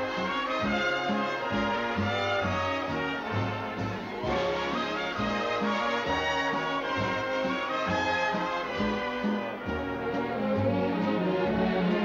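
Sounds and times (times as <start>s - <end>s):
orchestral music with brass: 0.0s - 12.0s.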